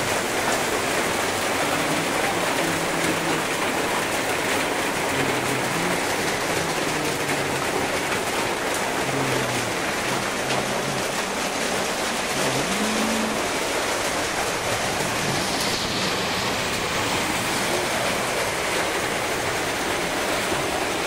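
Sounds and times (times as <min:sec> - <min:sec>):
rain on a metal roof: 0:00.0 - 0:21.0.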